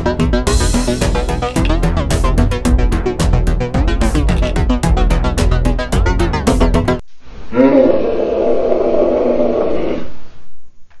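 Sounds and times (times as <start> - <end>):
loud drawn-out roar: 7.5 - 10.2.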